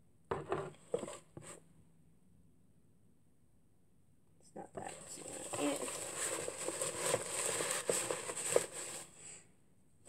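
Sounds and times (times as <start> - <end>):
packets rustling and crinkling: 4.9 - 9.2.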